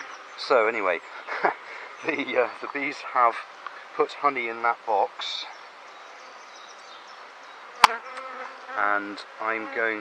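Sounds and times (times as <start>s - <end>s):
honeybees buzzing: 0.0s - 10.0s.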